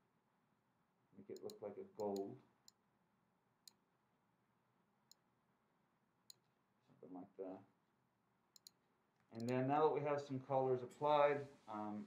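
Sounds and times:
computer mouse clicks: 0:01.4 - 0:02.8, 0:08.6 - 0:08.8, 0:09.4 - 0:09.6.

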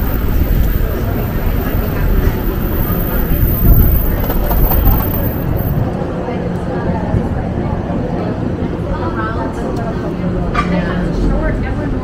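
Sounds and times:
passersby talking: 0:00.0 - 0:12.0
traffic rumble: 0:00.0 - 0:12.0.

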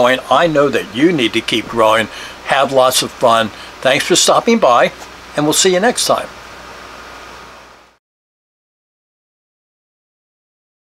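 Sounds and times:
background hiss: 0:00.0 - 0:08.0
faint hum: 0:00.0 - 0:08.0.

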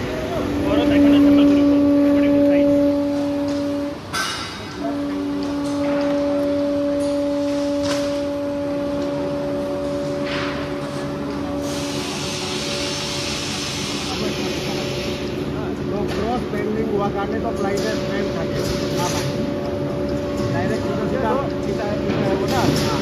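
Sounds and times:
second machine hum: 0:00.0 - 0:15.9
factory machinery humming: 0:00.0 - 0:23.0
hiss: 0:11.6 - 0:15.3.

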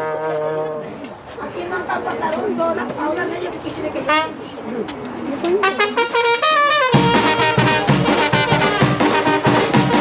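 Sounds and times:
crowd chatter: 0:00.0 - 0:10.0
brass band chord: 0:05.6 - 0:10.0.

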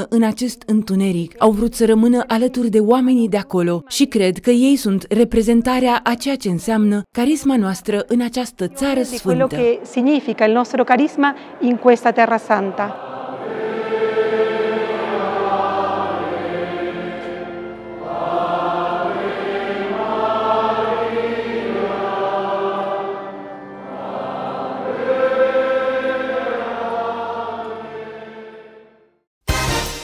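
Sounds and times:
choir singing a hymn: 0:08.8 - 0:09.8, 0:11.0 - 0:29.0.

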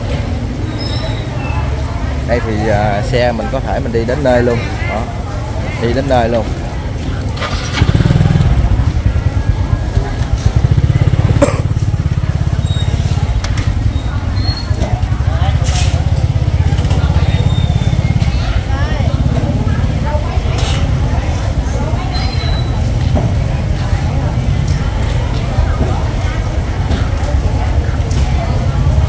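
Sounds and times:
market chatter: 0:00.0 - 0:29.0
scooter engine rumbling: 0:00.0 - 0:29.0.

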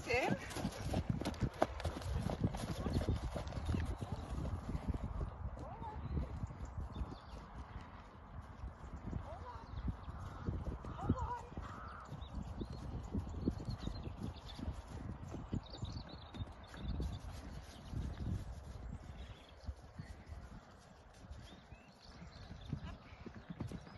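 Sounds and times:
horse hooves on grass: 0:00.0 - 0:23.9.

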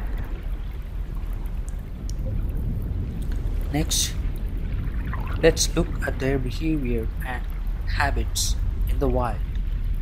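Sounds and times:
underwater rumble: 0:00.0 - 0:10.0.

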